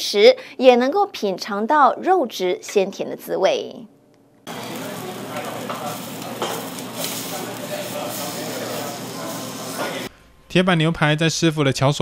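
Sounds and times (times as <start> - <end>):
steak sizzling on griddle: 4.5 - 10.1.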